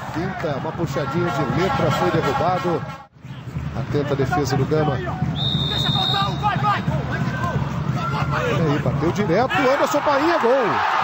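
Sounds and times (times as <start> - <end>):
stadium crowd noise: 0.0 - 11.0
referee's whistle blast: 5.4 - 7.0.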